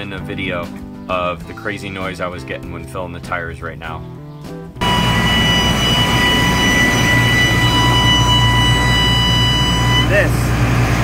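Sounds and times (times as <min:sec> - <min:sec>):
air valve whistling: 0:04.8 - 0:11.0
diesel engine running: 0:04.8 - 0:11.0.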